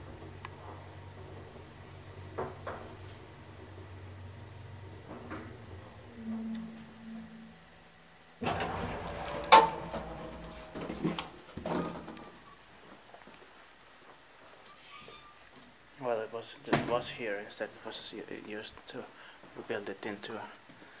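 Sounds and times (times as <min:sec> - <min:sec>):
elevator hum: 0:00.0 - 0:12.5
elevator doors rattling open: 0:08.4 - 0:12.1.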